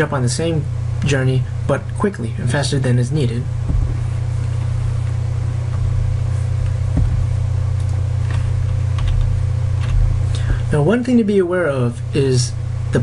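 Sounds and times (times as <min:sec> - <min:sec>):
loud steady low hum: 0:00.0 - 0:13.0.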